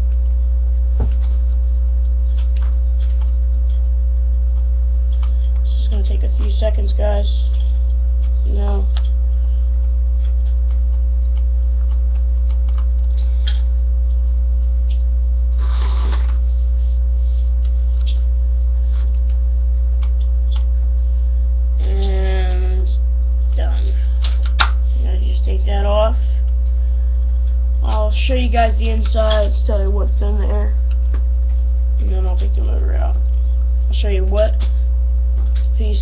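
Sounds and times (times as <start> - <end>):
low electrical hum: 0.0 - 36.0.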